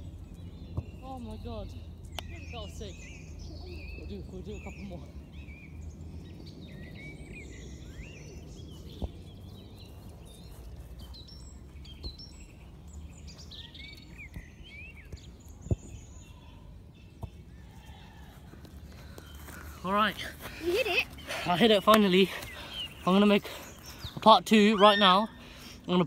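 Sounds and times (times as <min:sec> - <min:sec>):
birds chirping and singing: 0:00.0 - 0:26.0.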